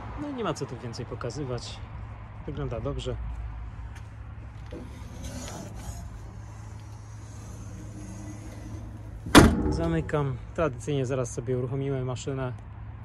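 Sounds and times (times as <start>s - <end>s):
engine cover banging shut: 8.2s - 10.3s.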